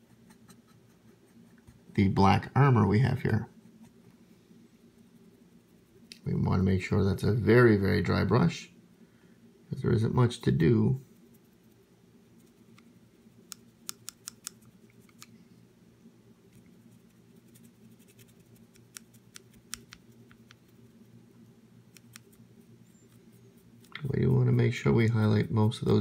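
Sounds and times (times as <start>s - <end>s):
low steady hum: 0.0s - 26.0s
paintbrush scratchy clicks: 13.5s - 15.3s, 16.5s - 20.9s, 21.9s - 22.4s.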